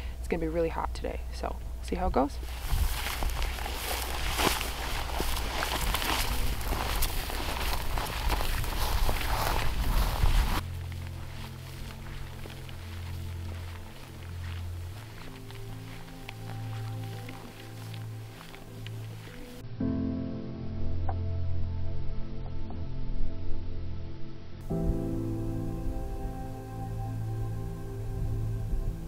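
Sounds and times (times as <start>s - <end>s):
slow low music: 0.0s - 29.0s
footsteps through dry grass: 1.9s - 19.6s
clothing and pack rustling: 2.3s - 19.6s.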